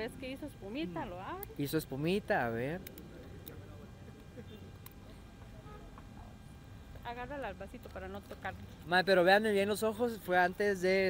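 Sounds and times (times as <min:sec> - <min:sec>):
low street background: 0:00.0 - 0:11.0.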